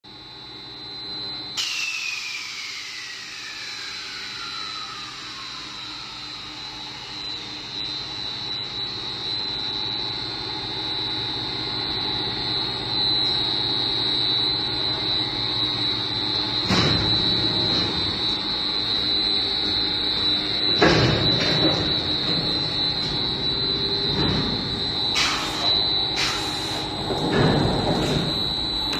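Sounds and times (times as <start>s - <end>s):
machine high-pitched whine: 0.1s - 28.9s
machinery hum: 0.1s - 28.9s.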